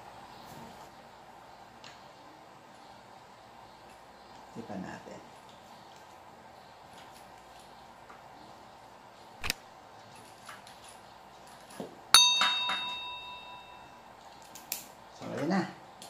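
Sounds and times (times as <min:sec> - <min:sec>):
bright bell ding: 0:12.2 - 0:14.0.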